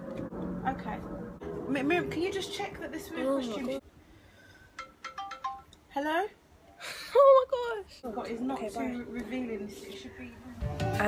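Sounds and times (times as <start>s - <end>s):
mobile phone ringtone: 5.0s - 5.7s.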